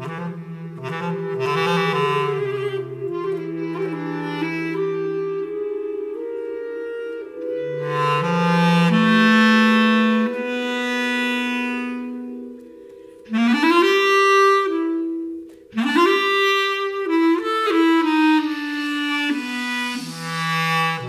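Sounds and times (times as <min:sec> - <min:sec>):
bass clarinet sustained notes: 0:00.0 - 0:21.0.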